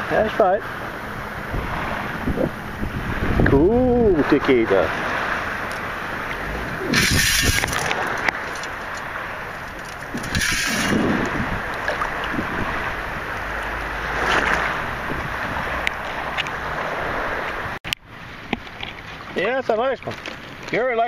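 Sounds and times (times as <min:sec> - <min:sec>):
water sloshing in surf: 0:00.0 - 0:21.0
wind buffeting microphone: 0:00.8 - 0:19.4.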